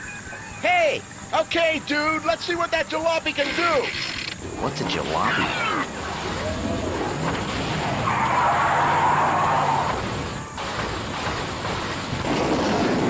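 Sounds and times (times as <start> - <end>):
engine drone: 3.3 - 13.0.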